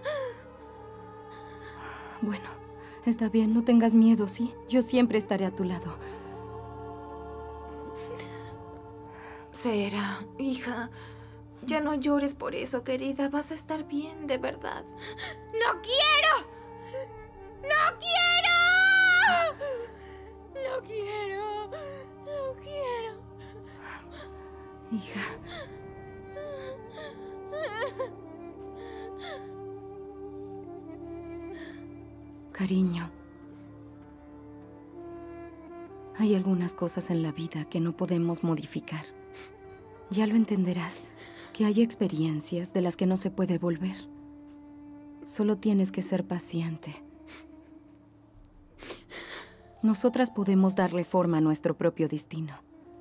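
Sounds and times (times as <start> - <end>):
soft background music: 0.0 - 53.0
woman crying and wailing: 24.9 - 28.4.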